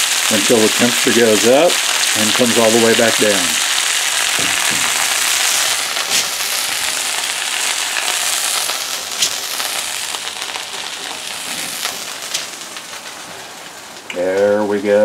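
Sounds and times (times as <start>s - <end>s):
steaks sizzling in skillet: 0.0s - 14.0s
fat popping: 3.5s - 14.2s.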